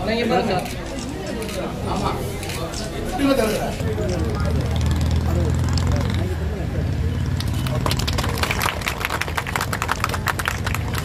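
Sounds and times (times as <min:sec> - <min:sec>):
people talking: 0:00.0 - 0:08.9.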